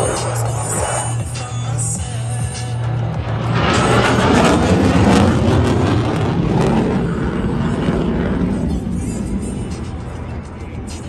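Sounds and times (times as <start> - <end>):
fighter jet roar: 0.0 - 11.0.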